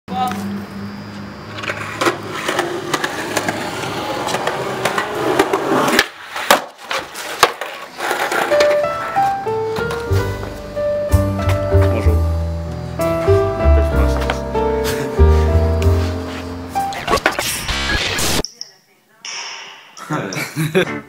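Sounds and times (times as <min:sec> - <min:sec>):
skateboard wheels rolling on concrete: 0:00.1 - 0:16.9
skateboard cracking: 0:01.5 - 0:10.0.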